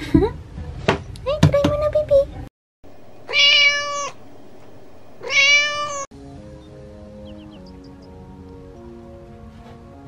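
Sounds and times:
cat meowing: 3.2 - 4.3, 5.2 - 6.1.

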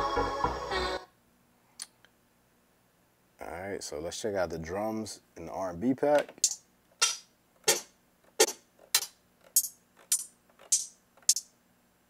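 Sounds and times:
closed hi-hat hits: 6.4 - 11.5.

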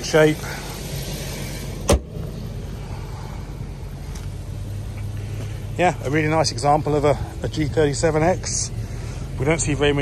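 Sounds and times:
car engine idling: 0.0 - 10.0
car hood slamming: 1.8 - 2.3.

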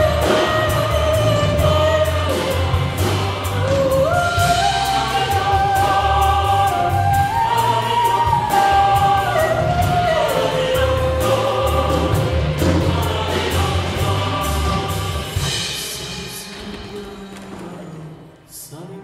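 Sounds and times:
instrumental accompaniment with bass: 0.0 - 17.0
choir singing: 0.0 - 19.0.

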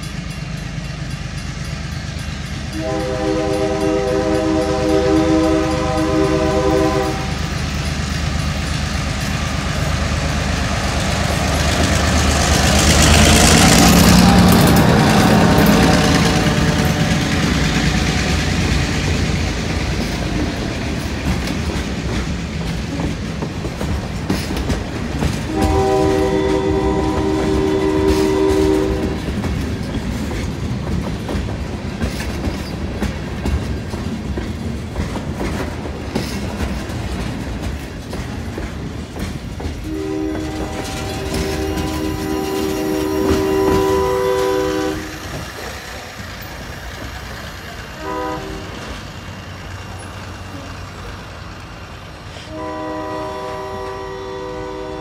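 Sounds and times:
diesel locomotive engine: 0.0 - 55.0
train cars rolling on steel wheels: 0.0 - 55.0
locomotive horn blast: 2.7 - 7.5, 13.1 - 17.4, 25.5 - 29.4, 39.9 - 45.3, 48.0 - 49.0, 52.4 - 55.0.

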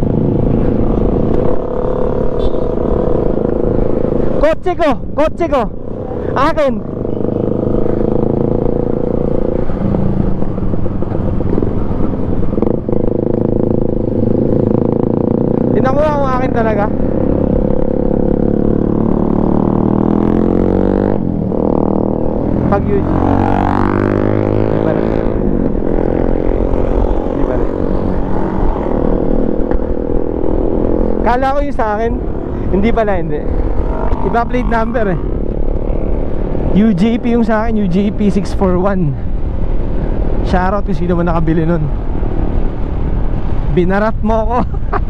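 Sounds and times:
motorcycle engines accelerating: 0.0 - 45.0
road noise: 0.0 - 45.0
wind noise: 0.0 - 45.0.

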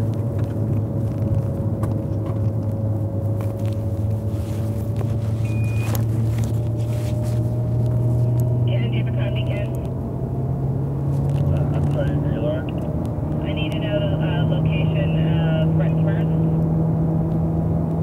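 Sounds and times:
car engine drone: 0.0 - 18.0.

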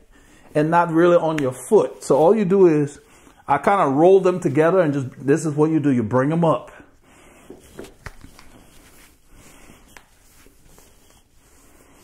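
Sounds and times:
fabric sleeve rustling: 0.0 - 5.6, 7.0 - 12.0.

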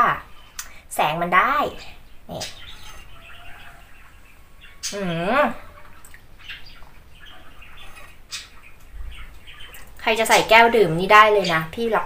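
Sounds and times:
woman humming: 4.9 - 5.8.

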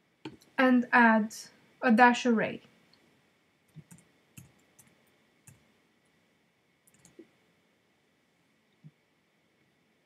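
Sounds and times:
computer keyboard keystrokes: 3.7 - 5.6, 6.9 - 7.2.

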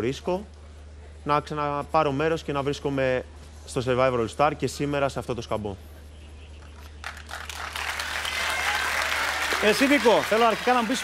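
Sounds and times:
steady low hum: 0.0 - 7.2
audience applauding: 7.0 - 11.0.

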